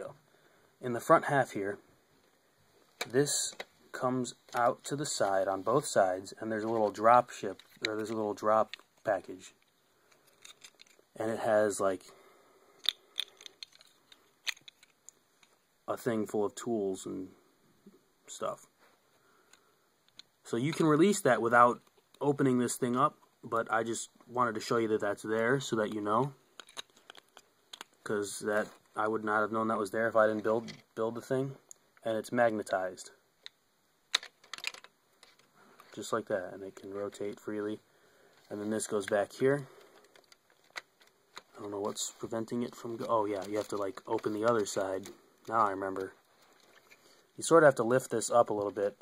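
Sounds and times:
plastic pieces clicking: 9.6s - 11.0s, 12.8s - 15.6s, 26.6s - 28.0s, 34.1s - 35.5s, 39.9s - 41.5s.

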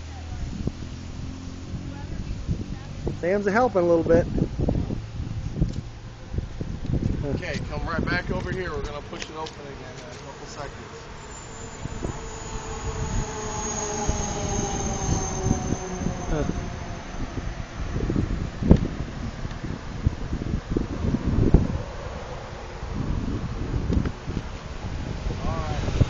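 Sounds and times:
low rumble: 9.6s - 26.0s.

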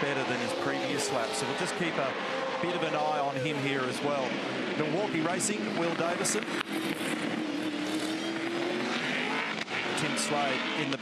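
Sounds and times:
race car engine at speed: 0.0s - 11.0s
track noise: 0.0s - 11.0s.

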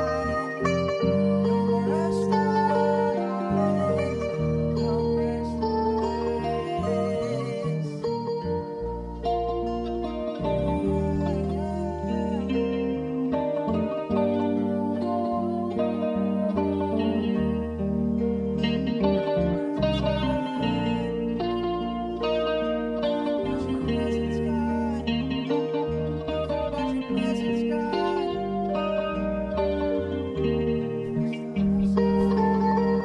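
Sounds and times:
worship band playing chords: 0.0s - 33.0s.

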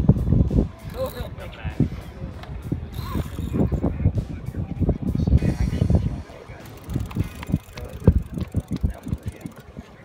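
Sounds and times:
wind buffeting microphone: 0.0s - 10.0s
fishing reel knocks and clicks: 2.4s - 3.7s, 6.6s - 9.8s.

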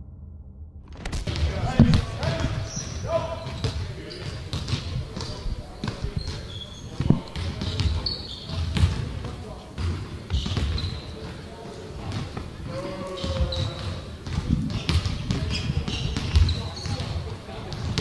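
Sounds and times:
basketballs bouncing on hardwood: 1.3s - 11.3s, 12.0s - 18.0s
sneakers squeaking on court: 1.3s - 18.0s.

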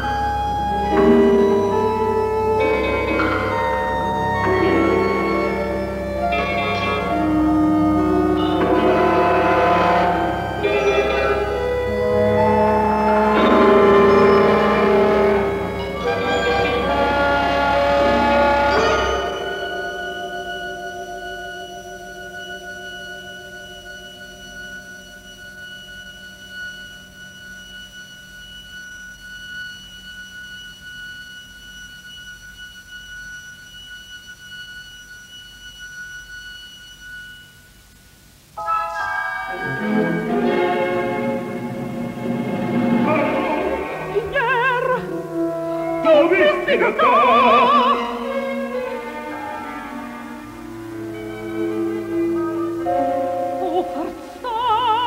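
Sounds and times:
symphony orchestra playing: 0.0s - 31.3s, 38.6s - 55.0s.

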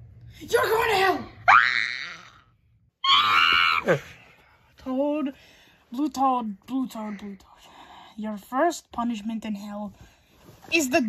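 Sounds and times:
person screaming high-pitched: 3.0s - 4.0s.

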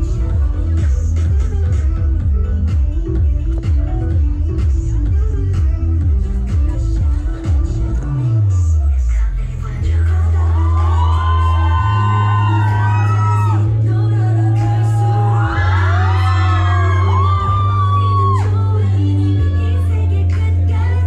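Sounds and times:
pop song over sound system: 0.0s - 21.0s
audience whooping: 10.2s - 18.7s.

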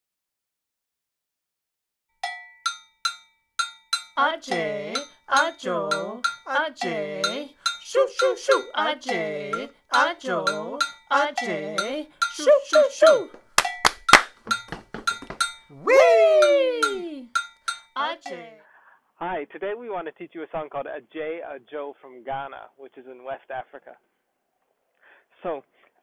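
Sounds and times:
hand claps: 12.3s - 17.5s
voice sliding up whee: 15.8s - 17.3s.

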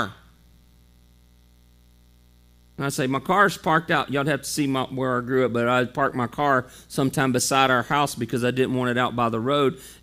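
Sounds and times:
man's voice: 0.0s - 0.3s, 2.8s - 10.0s
electrical mains hum: 0.0s - 10.0s.

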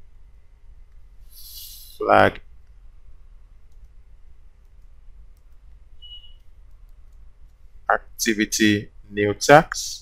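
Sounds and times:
faint low hum: 0.0s - 10.0s
high electronic beep: 6.0s - 6.4s.

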